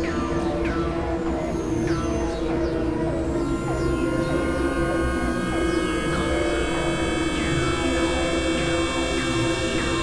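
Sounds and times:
electronic drone music: 3.4s - 10.0s.

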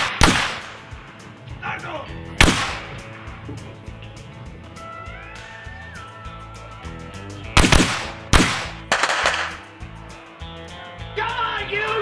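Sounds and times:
gunshots with echo: 0.0s - 1.0s, 2.4s - 3.0s, 7.6s - 9.6s
background music: 0.0s - 12.0s.

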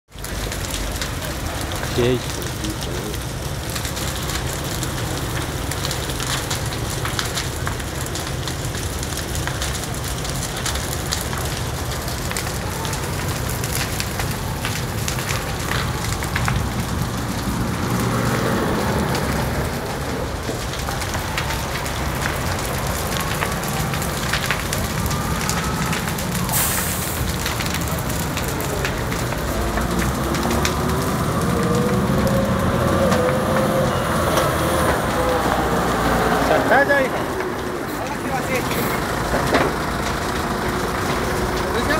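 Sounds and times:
large fire crackling and popping: 0.1s - 41.9s
engine running: 0.2s - 41.9s
heavy vehicle engine passing: 0.7s - 41.9s.

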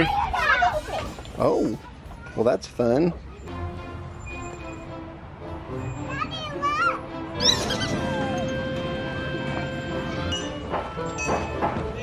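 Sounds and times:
background music: 3.5s - 12.0s.

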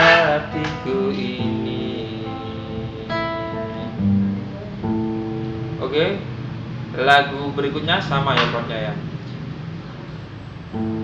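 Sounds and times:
acoustic guitar fingerpicked: 0.0s - 7.0s, 9.0s - 11.0s.

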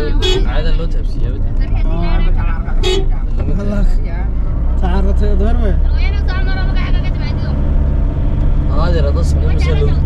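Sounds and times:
car driving rumble: 0.0s - 10.0s.

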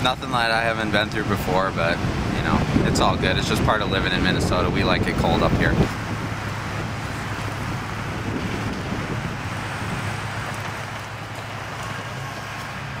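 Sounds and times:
traffic running: 0.0s - 13.0s
wind noise on microphone: 0.0s - 13.0s.

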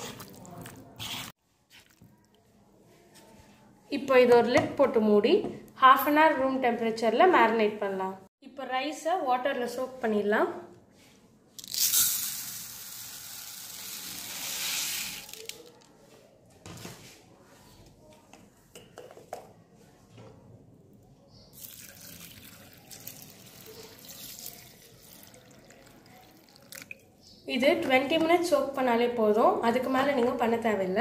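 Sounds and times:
rice grains pouring into bowl: 11.7s - 15.6s
water pouring over rice: 21.6s - 26.9s.

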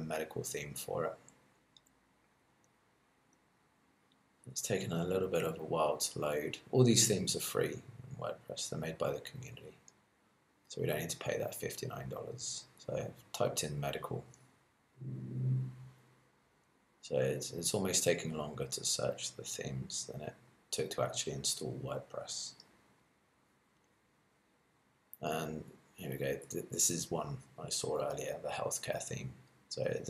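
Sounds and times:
man humming mmm: 15.0s - 15.8s.

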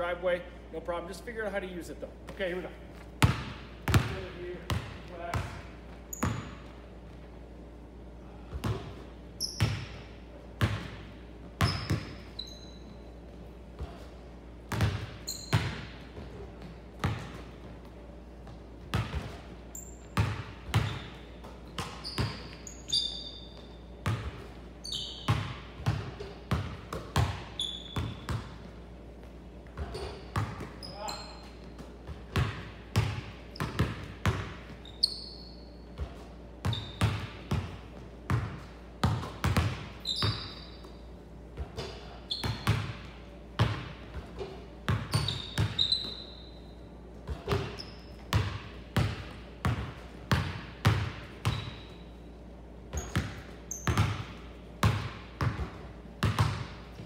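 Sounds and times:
sneakers squeaking on wooden floor: 2.3s - 7.3s, 8.6s - 10.0s, 11.6s - 14.2s, 14.8s - 17.8s, 18.4s - 26.5s, 27.2s - 28.6s, 29.6s - 32.5s, 33.2s - 37.5s, 40.0s - 43.0s, 44.3s - 48.4s, 51.3s - 52.4s, 53.0s - 54.2s
basketball bouncing on hardwood: 3.2s - 5.6s, 31.8s - 34.8s, 36.0s - 40.4s, 53.0s - 56.8s.

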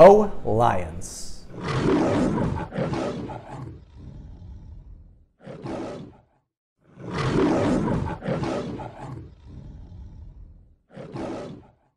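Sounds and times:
lion grunting calls: 1.4s - 6.4s, 7.1s - 11.9s
lion roaring: 1.5s - 11.9s.

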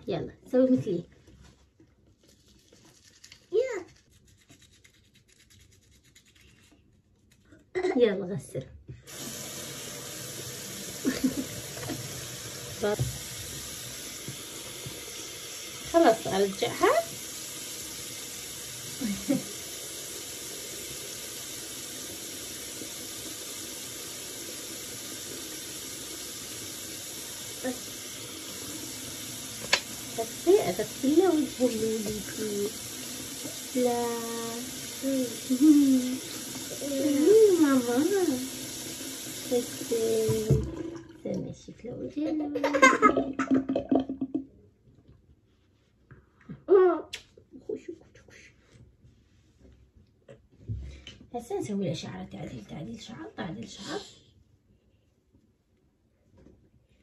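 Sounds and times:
toothbrush scrubbing teeth: 2.1s - 7.7s, 27.6s - 38.5s
tap water running into sink: 8.9s - 41.6s, 42.4s - 44.5s.

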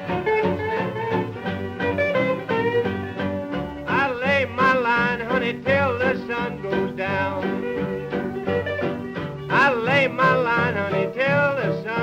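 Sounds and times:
western swing music from old record: 0.0s - 12.0s.

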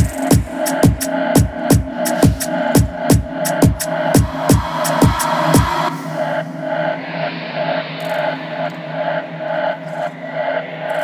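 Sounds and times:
pulsing echoing synth figure: 4.0s - 10.8s.

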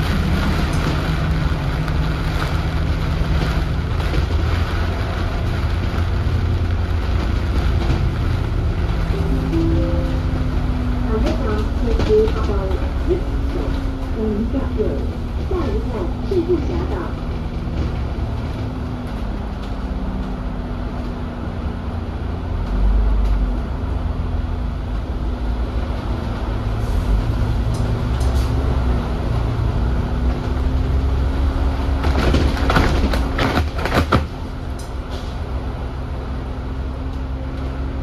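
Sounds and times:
bus engine rumbling: 0.0s - 38.0s.

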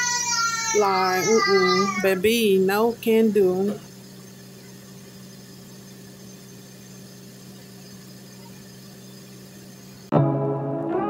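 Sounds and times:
low mechanical hum: 0.0s - 10.1s.

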